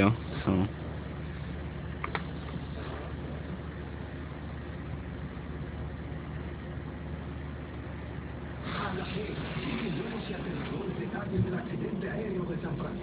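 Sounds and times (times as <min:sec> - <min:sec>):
low hum with hiss: 0:00.0 - 0:13.0
sharp click: 0:02.0 - 0:02.3.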